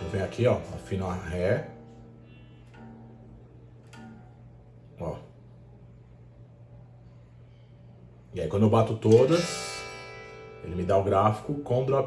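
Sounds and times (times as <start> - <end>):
electric guitar string ringing: 0.0 - 5.4, 8.9 - 12.0.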